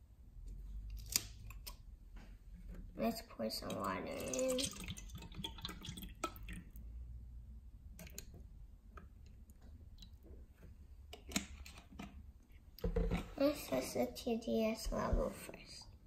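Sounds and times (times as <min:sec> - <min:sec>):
water pouring into plastic cup: 0:03.4 - 0:06.8
water trickling into cup: 0:03.6 - 0:06.8.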